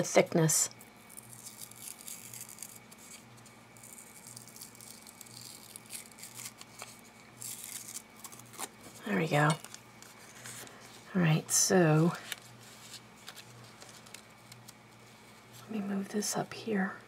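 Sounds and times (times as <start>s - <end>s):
low steady hum: 0.0s - 17.0s
paper crackling as peeled apart: 1.1s - 10.8s, 12.2s - 14.8s.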